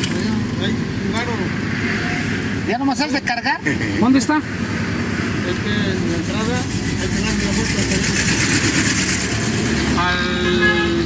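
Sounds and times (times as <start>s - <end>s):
vehicle engine idling: 4.6s - 11.0s.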